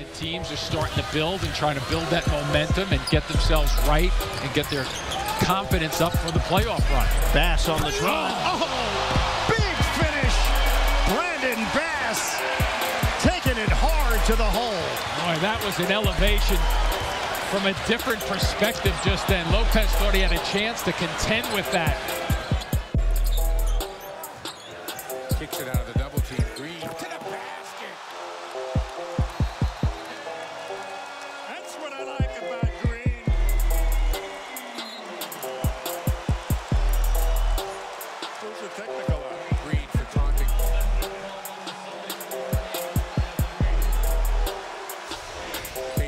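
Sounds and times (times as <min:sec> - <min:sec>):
music beat with deep bass: 0:02.4 - 0:04.3, 0:05.4 - 0:08.0, 0:09.1 - 0:11.2, 0:12.6 - 0:20.6, 0:21.4 - 0:24.0, 0:32.6 - 0:34.5, 0:35.2 - 0:37.9, 0:39.5 - 0:41.5, 0:42.1 - 0:46.0.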